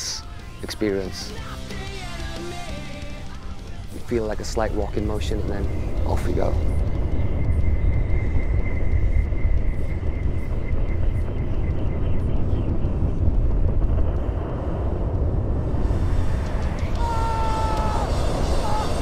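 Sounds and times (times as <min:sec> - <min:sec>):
faint high whine: 0:03.2 - 0:19.0
wind rushing over microphone: 0:05.0 - 0:19.0.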